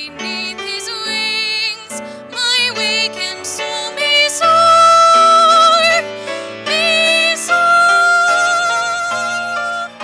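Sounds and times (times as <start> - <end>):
soft instrumental accompaniment: 0.0 - 10.0.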